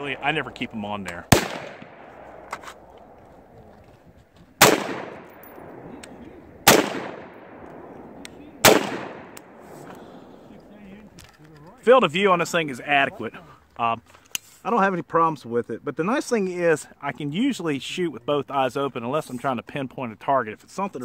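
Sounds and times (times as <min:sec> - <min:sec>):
gunshots with echoing tail: 0:00.0 - 0:03.2, 0:04.6 - 0:10.7.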